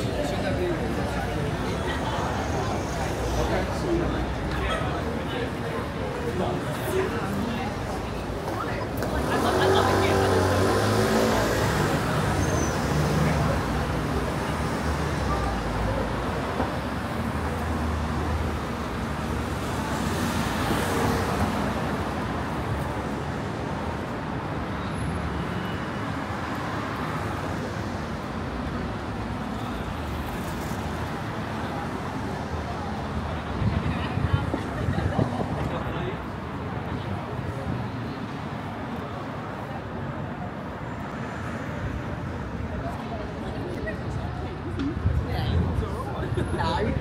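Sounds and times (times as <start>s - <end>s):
traffic hum: 0.0s - 47.0s
voices of passers-by: 0.0s - 47.0s.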